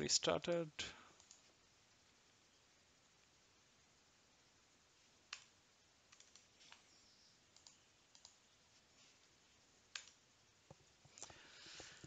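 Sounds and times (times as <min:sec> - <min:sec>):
faint computer clicks: 0:01.1 - 0:01.6, 0:05.3 - 0:08.4, 0:09.9 - 0:11.4.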